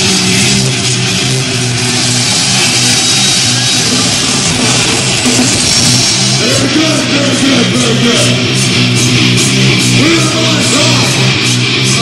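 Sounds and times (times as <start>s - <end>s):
electric guitars playing chords: 0.0s - 12.0s.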